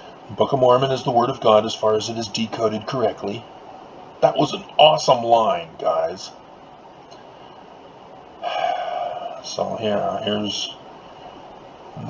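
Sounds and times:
man's breathy vocal sound: 8.4 - 9.4.

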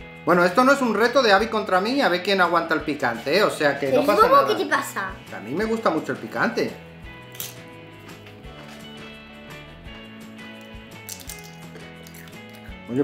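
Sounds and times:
soft background music: 0.0 - 13.0
tortilla chips crunching: 11.0 - 12.7.

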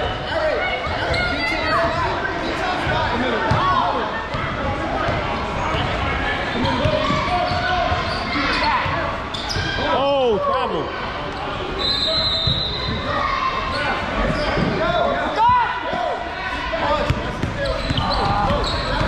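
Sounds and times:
sneakers squeaking on floor: 0.8 - 2.0, 4.3 - 10.0, 11.3 - 15.0, 17.0 - 19.0
basketball bouncing on court: 17.0 - 19.0.

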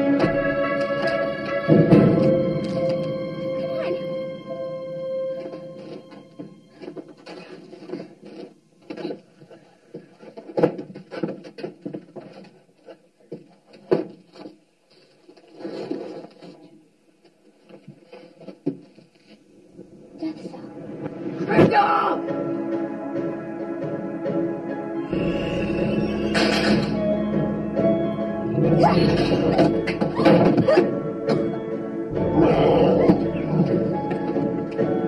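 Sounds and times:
horror film score held note: 0.0 - 7.7, 19.9 - 35.0.

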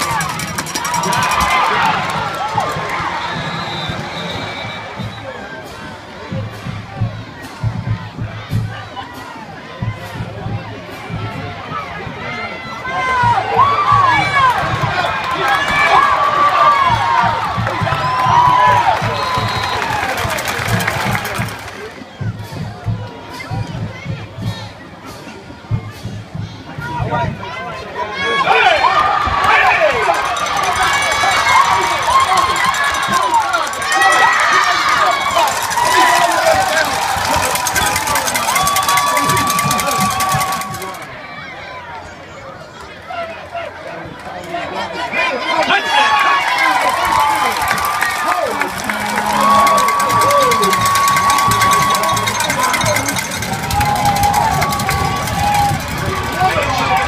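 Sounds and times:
crowd cheering and yelling: 0.0 - 57.0.

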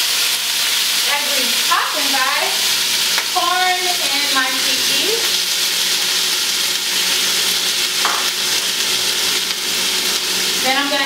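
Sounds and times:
vegetables sizzling in a pan: 0.0 - 11.0.

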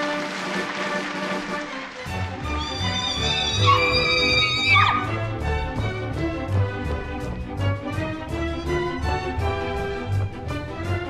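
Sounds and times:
orchestral strings music: 0.0 - 11.0.

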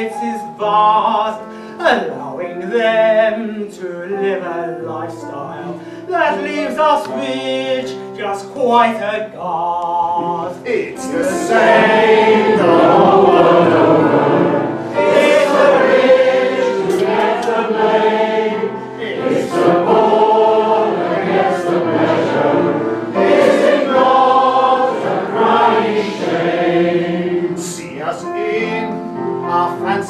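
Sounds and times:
many voices singing a chorus: 11.0 - 28.8.

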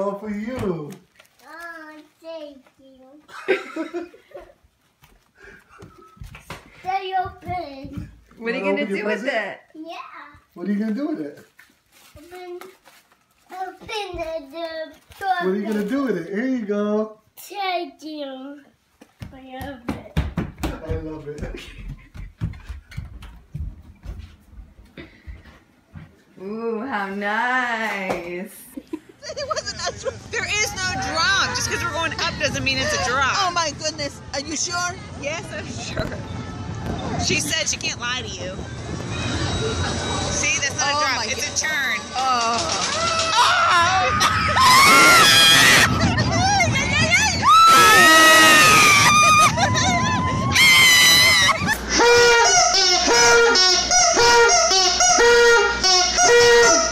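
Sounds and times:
footsteps on a wooden floor: 4.8 - 8.4, 19.0 - 26.3
woman screaming: 42.9 - 46.0, 47.4 - 51.7.

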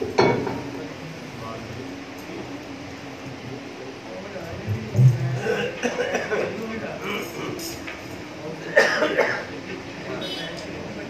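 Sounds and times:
low background murmur: 0.0 - 11.0
person coughing: 8.6 - 9.5.

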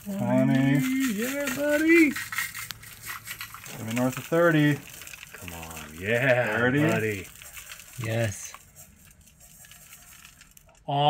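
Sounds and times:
gold flakes trickling into a bowl: 0.0 - 10.8.

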